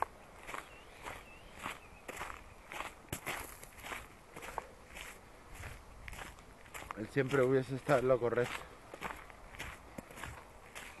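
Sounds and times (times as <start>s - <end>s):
footsteps on gravelly dirt path: 0.0s - 11.0s.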